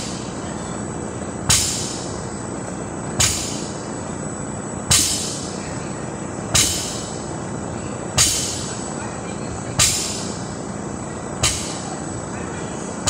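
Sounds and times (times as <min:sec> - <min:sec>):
steady background hum: 0:00.0 - 0:13.0.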